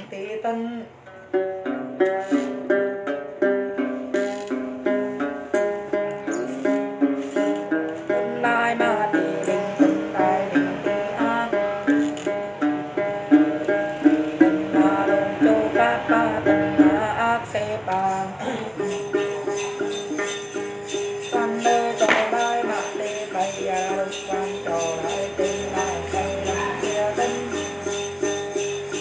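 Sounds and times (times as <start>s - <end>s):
plucked lute melody: 0.8s - 29.0s.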